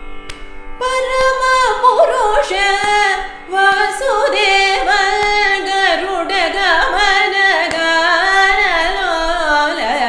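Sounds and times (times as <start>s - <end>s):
woman singing ornamented melody: 0.8s - 10.0s.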